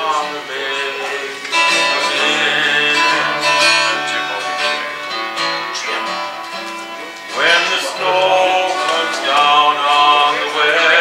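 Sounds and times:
acoustic guitar strummed: 0:00.0 - 0:11.0
man singing: 0:00.0 - 0:11.0
mandolin: 0:00.0 - 0:11.0.

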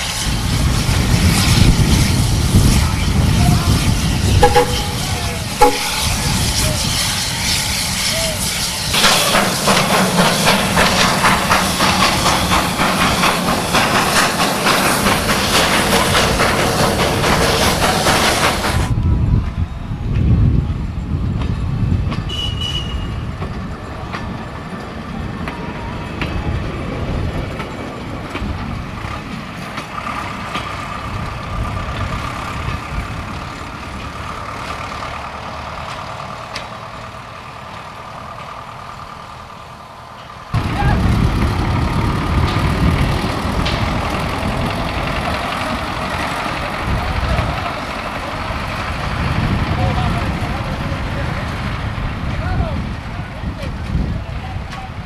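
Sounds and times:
rail vehicle engine noise: 0:00.0 - 0:55.0
railbus engine running: 0:00.0 - 0:55.0
voices: 0:02.6 - 0:18.5, 0:40.6 - 0:41.4, 0:42.2 - 0:55.0.

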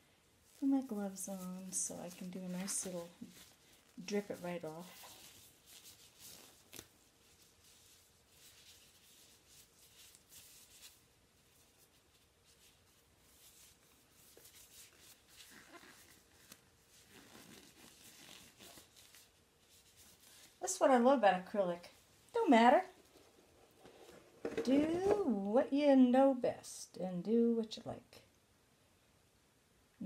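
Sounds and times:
plastic gloves crinkling: 0:00.0 - 0:20.8, 0:21.5 - 0:25.3.

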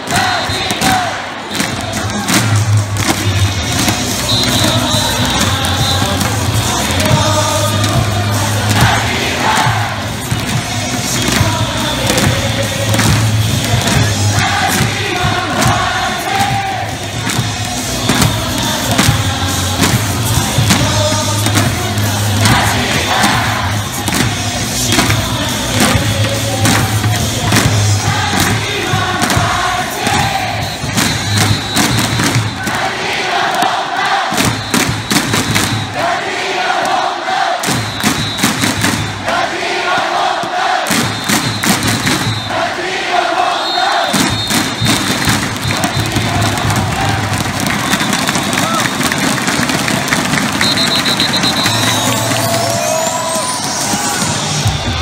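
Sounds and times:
crowd chanting in unison: 0:00.0 - 0:48.8
amplified stadium music: 0:00.0 - 0:55.0.

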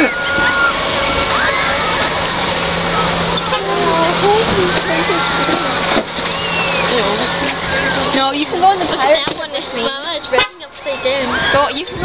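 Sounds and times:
low hum: 0:00.0 - 0:12.0
outdoor background noise: 0:00.0 - 0:12.0
voices talking and calling: 0:00.0 - 0:12.0.

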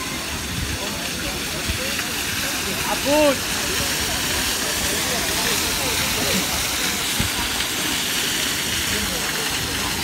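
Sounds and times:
steady rushing hiss: 0:00.0 - 0:10.0.

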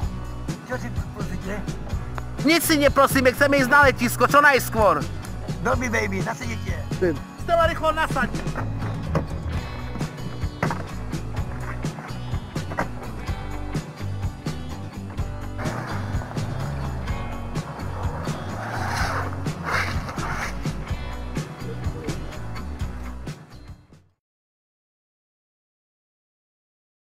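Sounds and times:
music with beat and bass line: 0:00.0 - 0:24.1
broad rushing noise: 0:15.6 - 0:21.0.

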